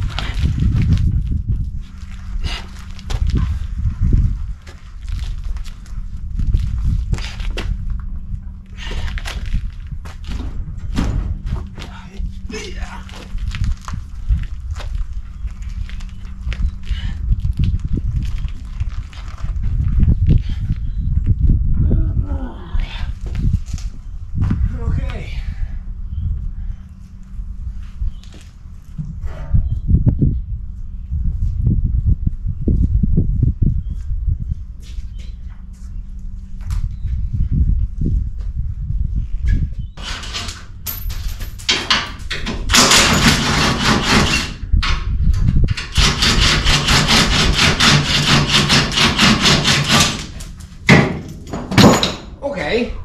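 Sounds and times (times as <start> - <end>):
wind rumbling on microphone: 0.0 - 53.0
tools and parts rattling: 40.0 - 52.4.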